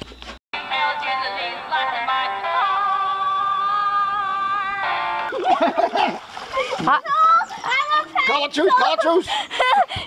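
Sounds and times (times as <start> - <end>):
music with sung melody: 0.6 - 5.3.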